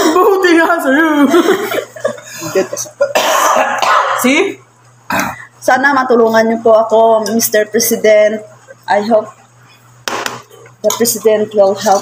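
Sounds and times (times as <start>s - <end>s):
man coughing into a tissue: 3.0s - 4.4s.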